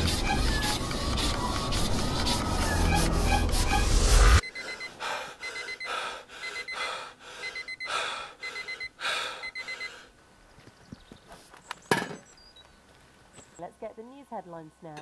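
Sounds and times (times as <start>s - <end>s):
alarm clock beeping: 0.0s - 10.0s
heavy gasping breaths: 4.5s - 10.2s.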